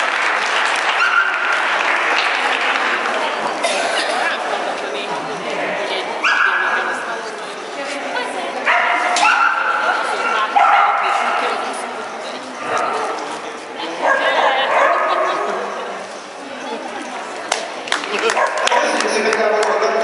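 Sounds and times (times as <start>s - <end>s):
dog barking and yipping: 8.7s - 11.3s.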